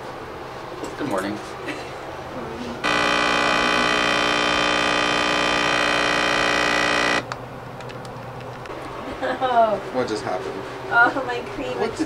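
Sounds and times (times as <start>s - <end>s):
coffee machine pump buzzing: 2.8s - 7.3s.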